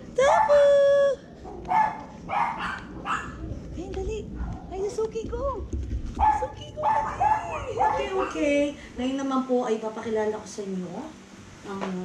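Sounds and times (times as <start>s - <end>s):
small dog barking: 1.4s - 3.5s, 6.2s - 8.6s.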